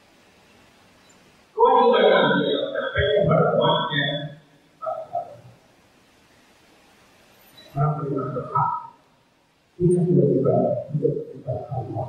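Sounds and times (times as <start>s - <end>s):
room hiss: 0.0s - 12.0s
man speaking into a microphone: 1.6s - 5.4s, 7.8s - 8.9s, 9.8s - 12.0s.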